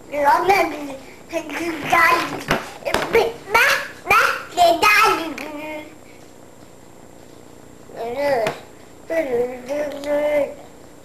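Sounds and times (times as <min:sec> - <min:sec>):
toddler babbling: 0:07.9 - 0:10.6.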